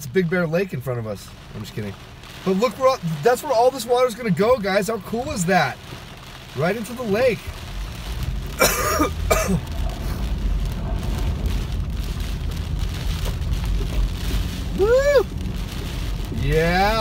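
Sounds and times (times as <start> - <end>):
car driving through heavy rain: 0.0 - 17.0
man coughing: 8.6 - 9.7.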